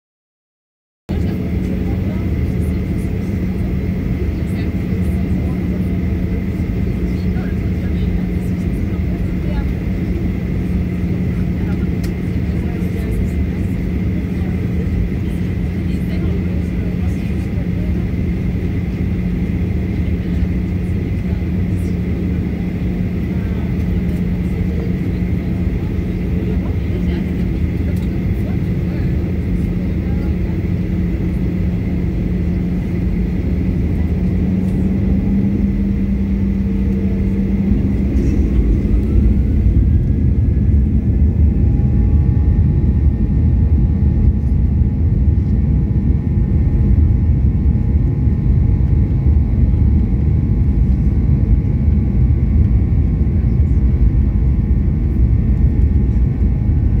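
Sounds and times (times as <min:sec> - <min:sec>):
airliner engine drone: 0:01.1 - 0:57.0.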